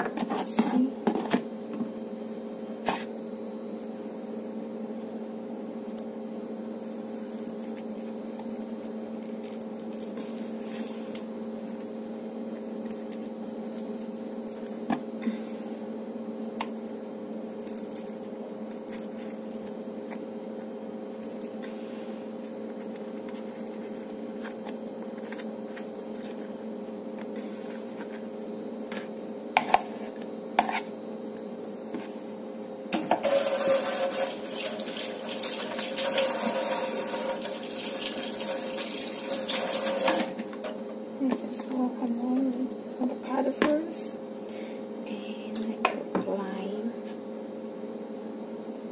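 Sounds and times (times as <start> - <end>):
steady low hum: 0.0 - 35.3, 40.2 - 48.9.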